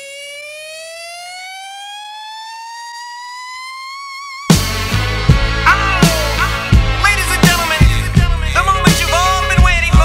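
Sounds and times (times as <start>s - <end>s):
rising siren-like tone: 0.0s - 6.8s.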